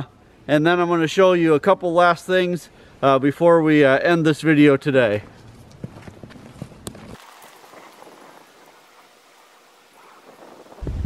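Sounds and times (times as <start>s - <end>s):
footsteps crunching through snow: 5.2s - 10.8s.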